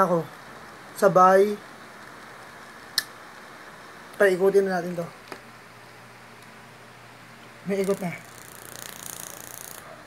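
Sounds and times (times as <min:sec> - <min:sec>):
timer ratchet clicking: 0:07.7 - 0:09.8.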